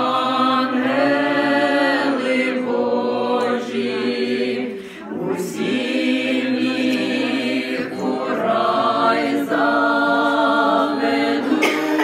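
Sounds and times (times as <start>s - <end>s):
group singing a cappella: 0.0s - 12.0s
singer breath: 4.7s - 5.2s.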